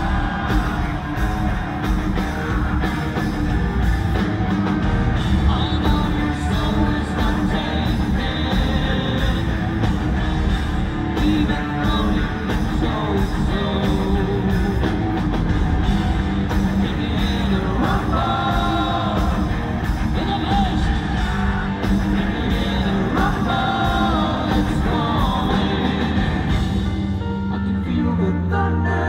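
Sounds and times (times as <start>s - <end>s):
man singing: 0.0s - 1.3s, 5.3s - 9.7s, 11.1s - 15.0s, 16.7s - 26.6s, 27.2s - 29.0s
heavy rock band playing: 0.0s - 28.2s.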